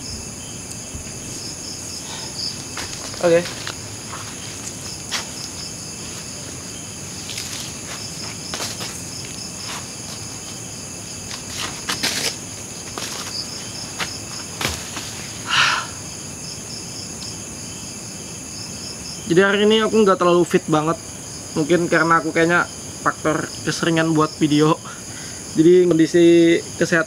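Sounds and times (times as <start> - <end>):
night insects chirping: 0.0 - 27.0
rustling in dry leaves: 0.8 - 15.6.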